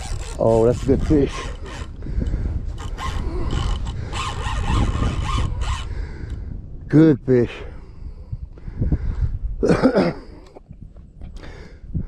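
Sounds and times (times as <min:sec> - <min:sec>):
fishing reel drag rasping: 0:00.0 - 0:02.0, 0:02.7 - 0:05.9.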